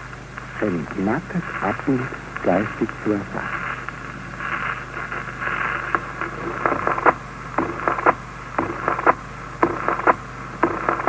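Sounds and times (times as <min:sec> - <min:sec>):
record surface hiss: 0:00.0 - 0:11.0
steady low hum: 0:00.0 - 0:11.0
record clicks: 0:00.1 - 0:11.0.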